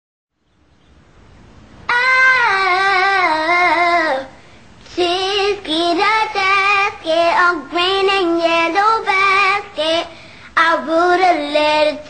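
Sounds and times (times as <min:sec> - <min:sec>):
faint background noise: 0:00.3 - 0:12.0
child singing: 0:01.9 - 0:12.0.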